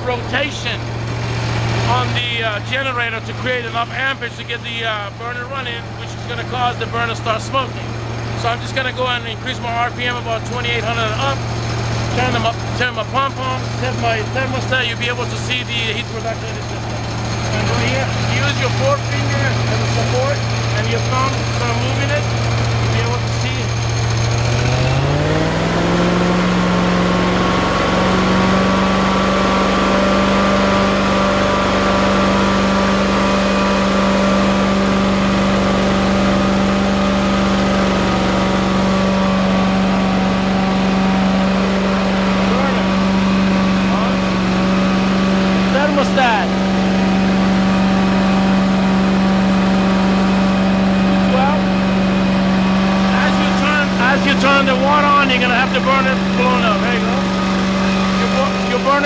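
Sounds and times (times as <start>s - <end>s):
engine revving up: 0.0s - 59.0s.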